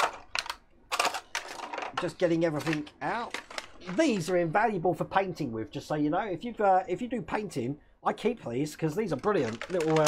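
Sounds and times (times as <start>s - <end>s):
plastic bags crinkling: 0.0s - 4.4s, 9.1s - 10.0s.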